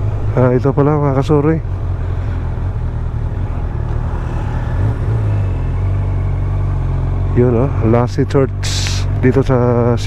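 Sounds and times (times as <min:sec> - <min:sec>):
motorcycle engine running: 0:00.0 - 0:10.0.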